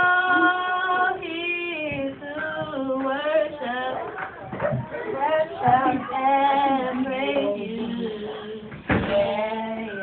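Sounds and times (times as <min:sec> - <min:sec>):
girls singing gospel song: 0:00.0 - 0:10.0.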